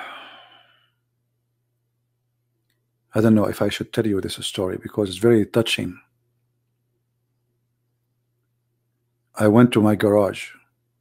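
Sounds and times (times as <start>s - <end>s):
man sighing: 0.0s - 0.9s
faint low hum: 0.0s - 11.0s.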